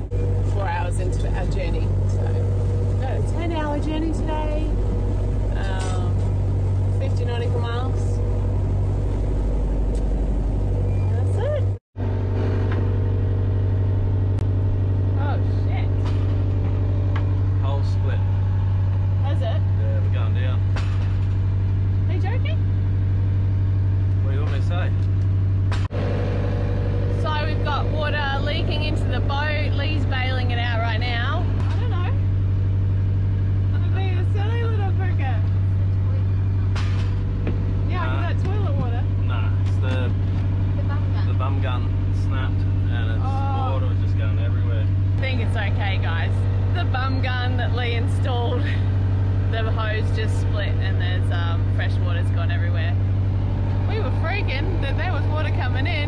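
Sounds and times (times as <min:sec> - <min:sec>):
voices: 0:00.0 - 0:08.3, 0:10.7 - 0:11.8, 0:27.1 - 0:32.3, 0:33.7 - 0:36.8, 0:37.4 - 0:53.1, 0:53.7 - 0:56.0
boat engine droning: 0:00.0 - 0:56.0.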